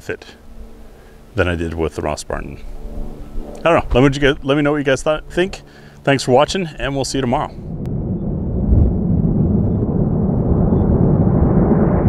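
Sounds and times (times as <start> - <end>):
deep noisy rumble: 0.0 - 12.0.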